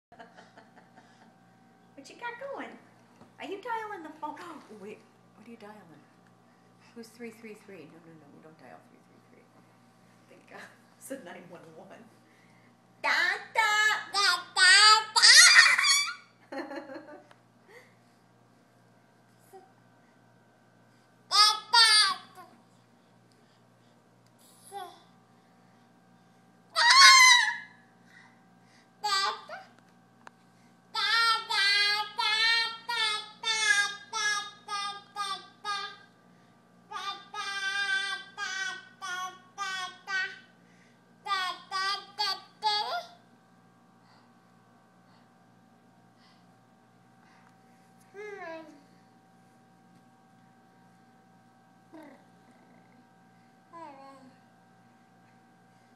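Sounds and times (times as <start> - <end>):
toddler vocalizing: 36.9 - 40.4.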